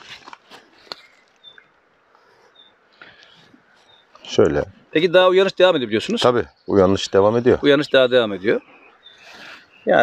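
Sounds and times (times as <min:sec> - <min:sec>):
light clicks of branches: 0:00.0 - 0:04.4
branches and leaves rustling: 0:00.0 - 0:10.0.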